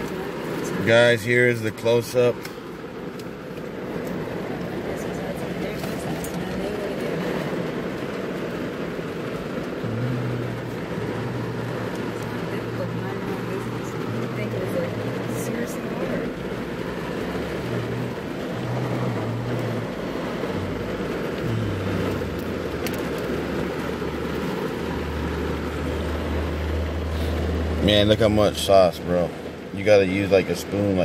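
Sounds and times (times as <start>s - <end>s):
background rumble and hiss: 0.0s - 31.0s
low hum shifting in pitch: 9.7s - 24.1s.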